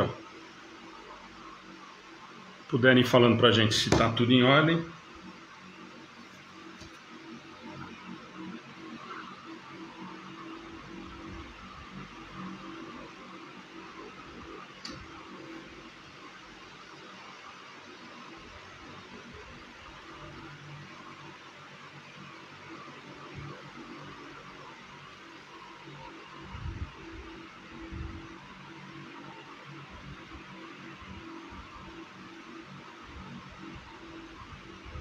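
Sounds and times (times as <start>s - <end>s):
room tone hiss: 0.0s - 35.0s.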